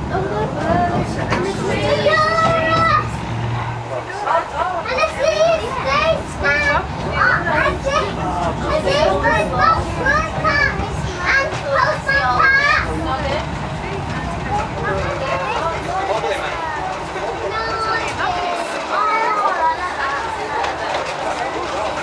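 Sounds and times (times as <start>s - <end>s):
children chattering and calling out: 0.0s - 22.0s
tram rumbling: 0.0s - 22.0s.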